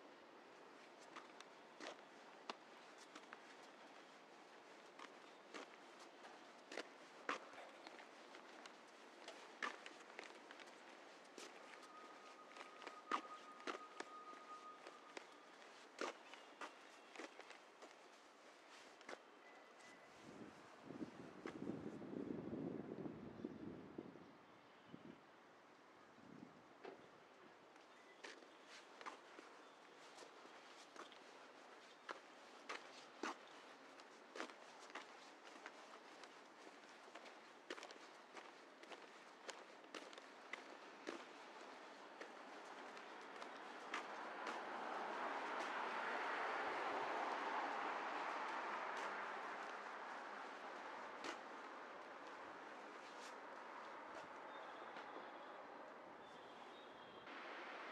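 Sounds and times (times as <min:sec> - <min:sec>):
footsteps on pavement: 0:00.7 - 0:21.9, 0:27.8 - 0:55.4.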